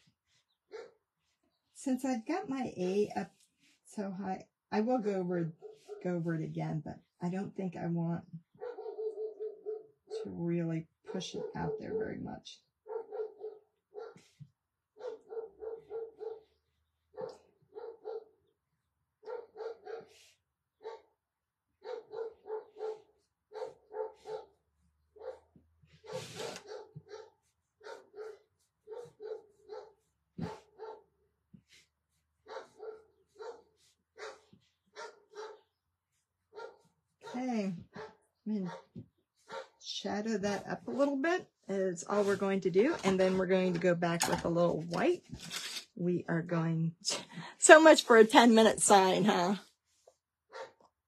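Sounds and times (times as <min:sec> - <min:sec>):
people talking: 0:01.8 - 0:03.3, 0:03.9 - 0:08.2, 0:10.1 - 0:12.6, 0:37.4 - 0:37.8, 0:38.5 - 0:38.7, 0:39.9 - 0:45.2, 0:46.0 - 0:49.6
dog yapping: 0:39.5 - 0:39.7.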